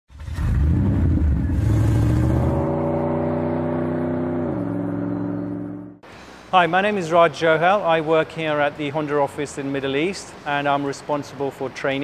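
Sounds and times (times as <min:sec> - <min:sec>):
car engine revving: 0:00.2 - 0:06.0.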